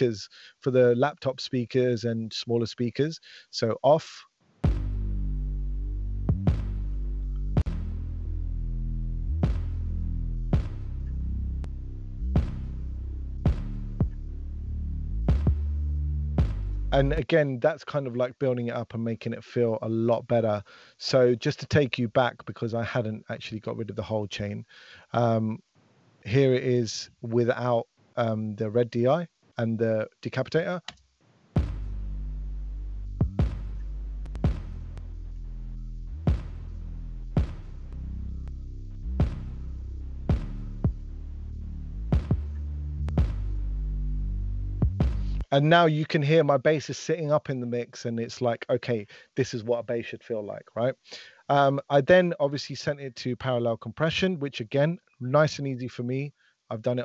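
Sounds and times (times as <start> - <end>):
sharp drum hits: 4.6 - 5.1, 6.3 - 6.8, 9.4 - 9.8, 12.4 - 12.7, 16.4 - 16.8, 31.6 - 32.1, 33.2 - 34.9, 36.3 - 36.6, 39.2 - 39.5, 44.8 - 45.4
deep synth bass notes: 4.7 - 17.2, 31.6 - 45.5.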